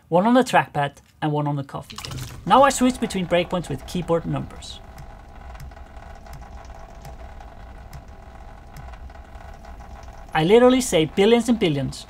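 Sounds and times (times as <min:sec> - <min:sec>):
steady low hum: 0:01.9 - 0:12.0.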